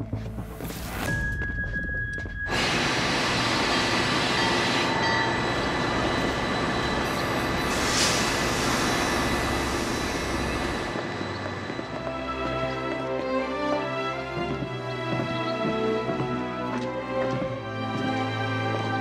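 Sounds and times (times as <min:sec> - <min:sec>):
music: 0:00.0 - 0:05.5, 0:10.6 - 0:19.0
train carriages rumbling: 0:00.0 - 0:19.0
steam hissing: 0:02.5 - 0:11.1.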